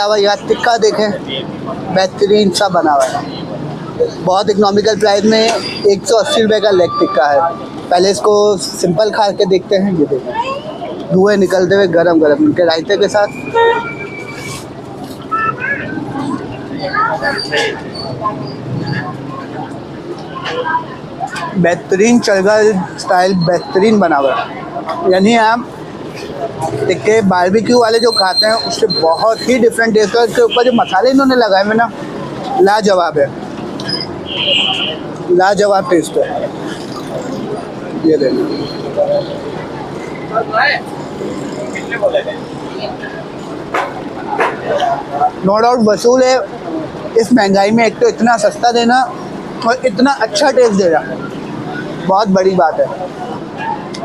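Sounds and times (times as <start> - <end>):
street traffic: 0.0 - 54.0
voices: 0.0 - 54.0
vehicle horn: 13.5 - 14.2.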